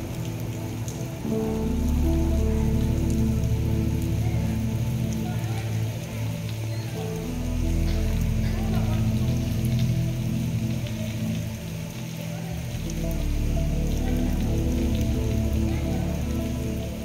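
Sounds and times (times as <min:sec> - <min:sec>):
rain-like hiss: 0:00.0 - 0:17.0
soft background music: 0:00.0 - 0:17.0.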